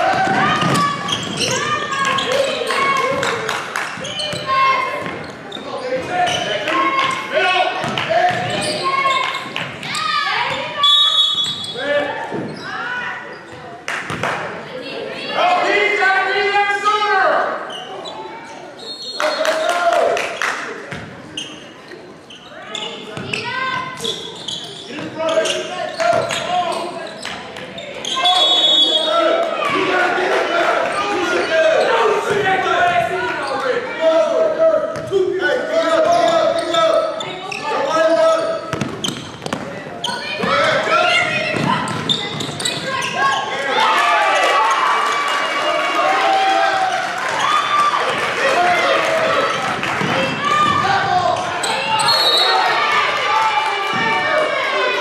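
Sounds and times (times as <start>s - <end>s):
voices echoing in gym: 0.0s - 55.0s
basketball bouncing on hardwood floor: 41.5s - 42.6s.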